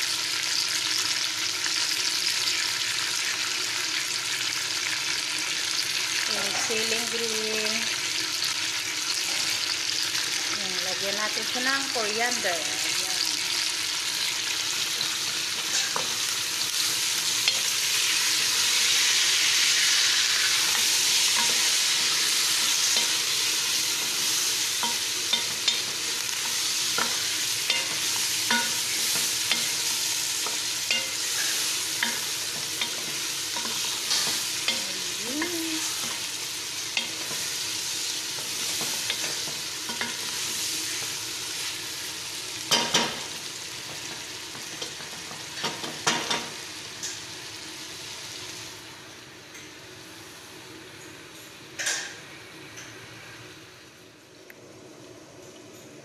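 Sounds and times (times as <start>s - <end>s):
chicken sizzling in oil: 0.0s - 51.0s.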